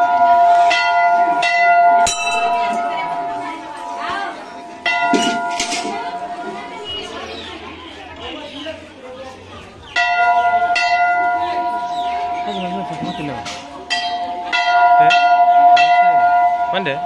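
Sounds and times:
temple bell ringing: 0:00.0 - 0:07.6, 0:10.0 - 0:17.0.

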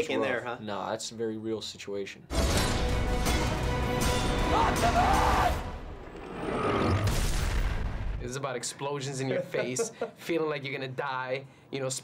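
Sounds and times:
film score: 0:02.3 - 0:08.4
man yelling: 0:04.4 - 0:05.7.

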